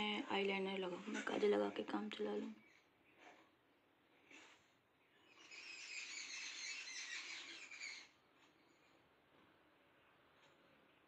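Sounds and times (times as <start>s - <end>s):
birds chirping and twittering: 5.0s - 9.1s.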